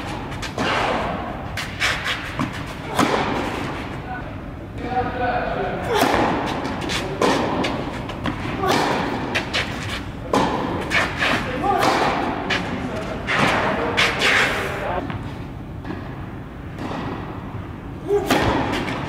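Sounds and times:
tennis racket hitting ball: 0.0 - 4.0, 5.9 - 14.5, 18.1 - 19.0
tennis ball bouncing on court: 2.2 - 3.6, 5.9 - 13.7.

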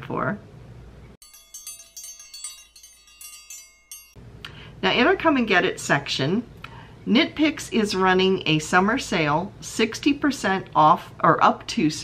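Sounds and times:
wind chimes ringing: 1.2 - 4.2.

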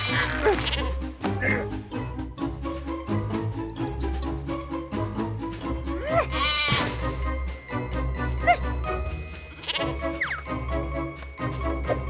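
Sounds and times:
background music with steady beat: 0.6 - 12.0
sheep bleating: 6.0 - 6.8, 9.6 - 10.0.

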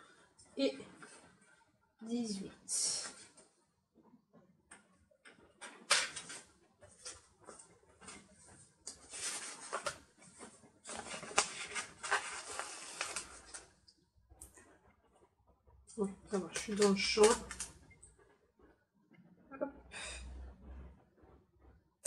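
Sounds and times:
paper rustling and scraping: 5.7 - 13.8.

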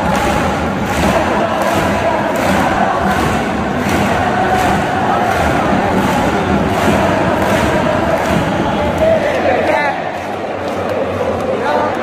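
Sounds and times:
drum thumps: 0.0 - 9.0
stadium crowd chanting: 0.0 - 12.0.

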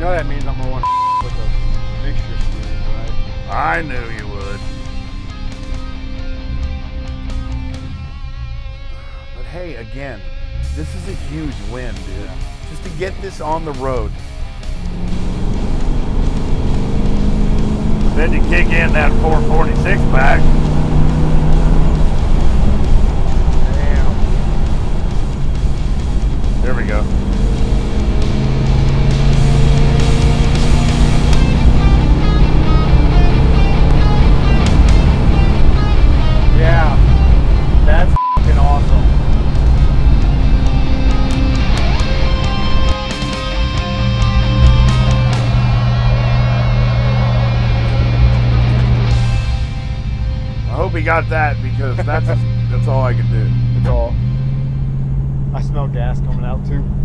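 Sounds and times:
background music: 0.0 - 56.3
car engine running on the road: 0.0 - 57.0.

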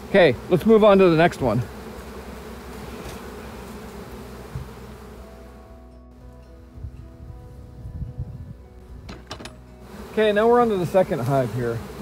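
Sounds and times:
honeybees buzzing: 0.0 - 12.0
held music notes: 3.9 - 12.0.

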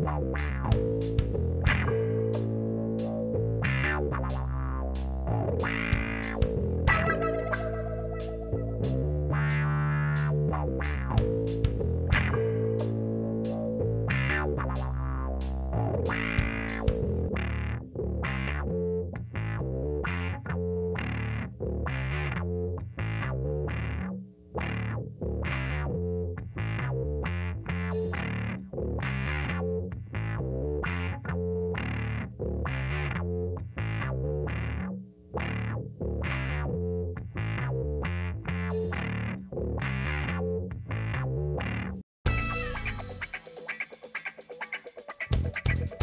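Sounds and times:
bass line: 0.0 - 43.6, 45.2 - 46.0
distorted electric guitar chords: 0.0 - 46.0.

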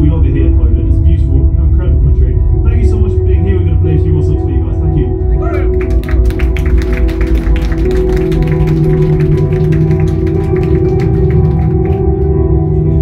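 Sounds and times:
bass sustained notes: 0.0 - 13.0
electric guitar sustained notes: 4.1 - 13.0.

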